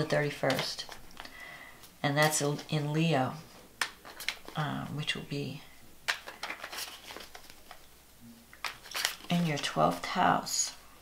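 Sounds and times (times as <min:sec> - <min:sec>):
woman breathing in: 0:01.2 - 0:01.9.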